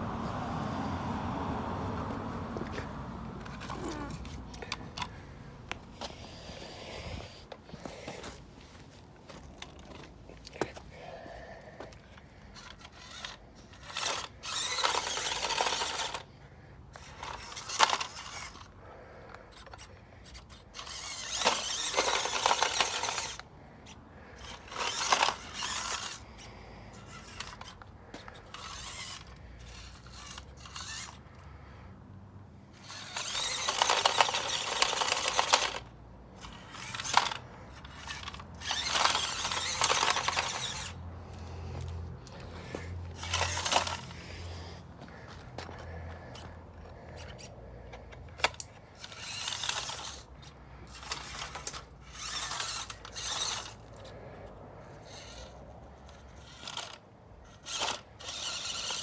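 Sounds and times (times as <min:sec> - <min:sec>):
electric motor and gears whirring: 0:02.0 - 0:31.8, 0:32.6 - 0:59.0
tyres scrabbling on concrete: 0:11.8 - 0:16.2, 0:17.0 - 0:18.7, 0:19.5 - 0:23.4, 0:24.4 - 0:26.2, 0:27.0 - 0:31.2, 0:32.8 - 0:54.1.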